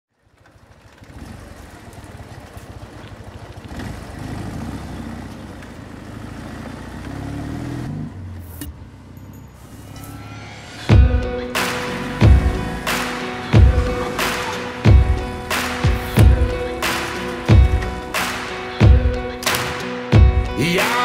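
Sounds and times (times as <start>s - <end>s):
motorcycle engine revving: 0.3s - 20.5s.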